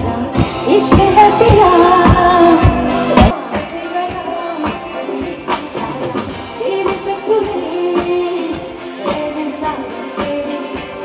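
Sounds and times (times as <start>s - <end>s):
live pop song: 0.0s - 11.0s
person singing: 0.0s - 11.0s.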